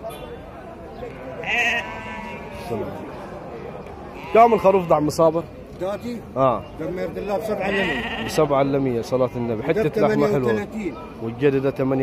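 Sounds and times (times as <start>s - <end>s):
crowd murmuring: 0.0s - 12.0s
sheep or goat bleating: 1.4s - 2.7s, 4.1s - 5.1s, 7.6s - 8.5s.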